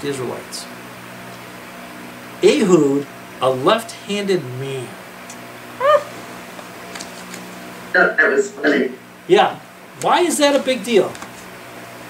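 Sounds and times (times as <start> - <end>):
steady low hum: 0.0 - 12.0
short high-pitched call: 5.8 - 6.1.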